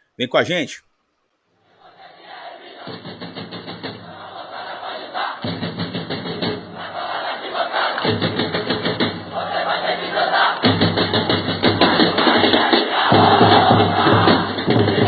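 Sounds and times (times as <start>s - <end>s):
crowd chanting: 1.8s - 15.0s
music: 2.9s - 15.0s.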